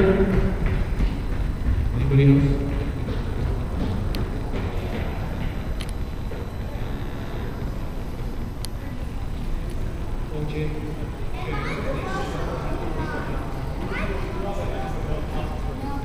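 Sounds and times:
steady low rumble: 0.0s - 11.4s
chatter of people in a hall: 4.3s - 16.0s.

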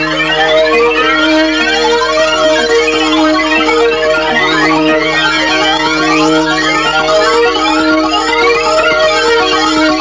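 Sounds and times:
held synth chords: 0.0s - 10.0s
rising siren-like synth sweeps: 0.0s - 10.0s.

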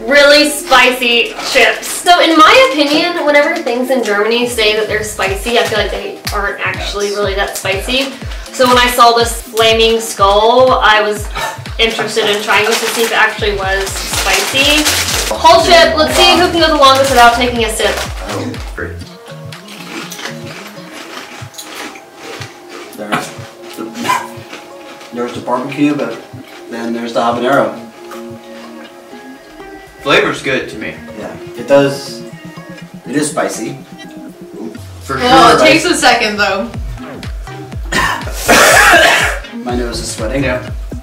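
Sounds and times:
light background music: 0.0s - 41.0s
person coughing harshly: 11.3s - 11.7s, 24.0s - 24.4s, 37.9s - 39.5s
potato chips crunching: 12.0s - 27.7s.

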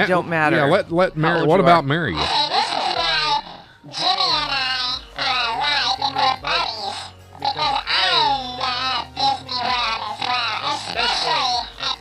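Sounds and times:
squeaky character voice babbling: 2.2s - 12.0s.

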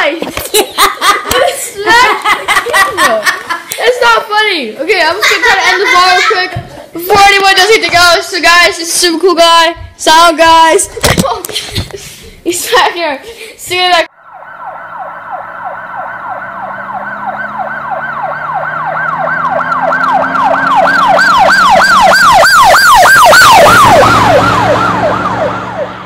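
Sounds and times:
siren yelping: 14.1s - 26.0s.

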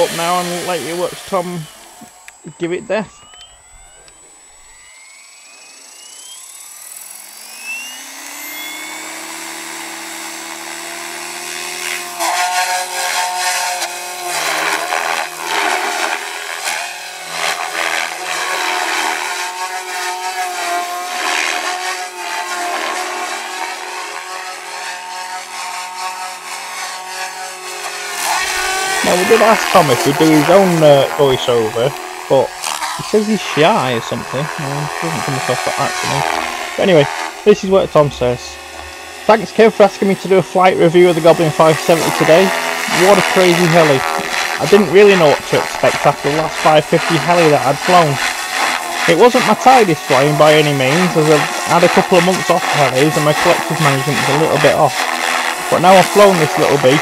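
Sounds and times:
helicopter rotor blades in flight: 0.0s - 24.8s, 26.8s - 57.0s
rc helicopter motor whine: 0.0s - 57.0s.

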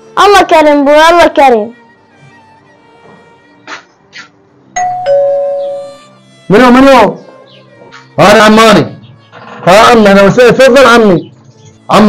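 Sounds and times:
two-tone doorbell chime: 4.8s - 6.0s.

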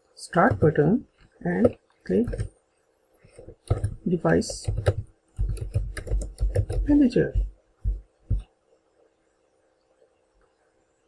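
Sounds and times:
typing on computer keyboard: 1.6s - 2.5s, 3.4s - 8.4s.

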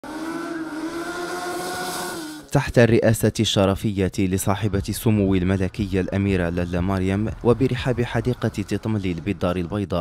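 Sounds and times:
race car engine at high revs: 0.0s - 2.5s.

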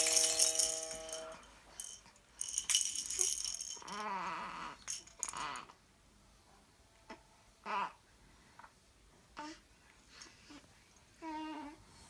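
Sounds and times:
chime-like ringing chord: 0.0s - 1.5s
hanging baby toys rattling: 0.0s - 5.7s.

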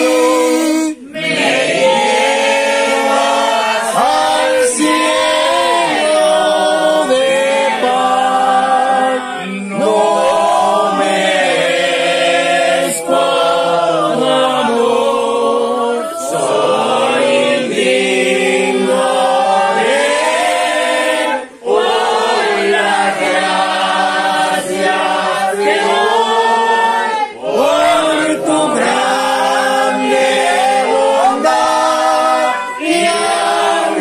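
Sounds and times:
group singing unaccompanied: 0.0s - 34.0s.

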